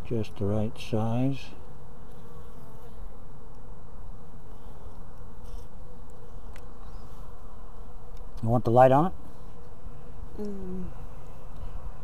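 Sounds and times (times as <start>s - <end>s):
bees buzzing: 0.8s - 8.4s, 9.1s - 12.0s.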